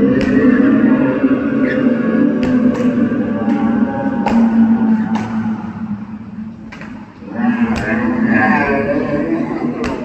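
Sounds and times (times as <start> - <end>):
low moo-like tone: 0.0 - 6.6.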